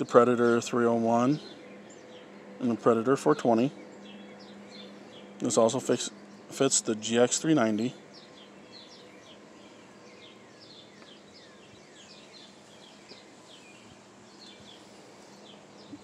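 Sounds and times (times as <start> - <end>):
faint birds chirping: 0.0 - 16.0
low steady hiss: 2.3 - 16.0.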